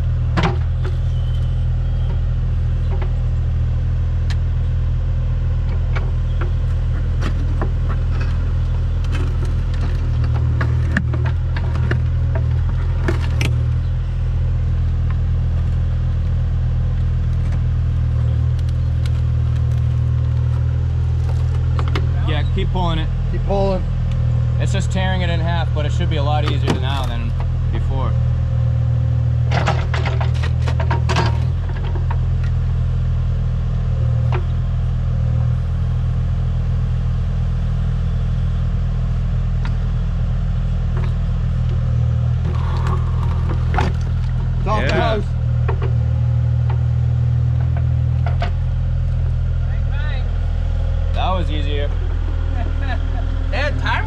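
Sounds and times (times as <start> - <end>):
excavator diesel engine running: 0.0 - 54.0.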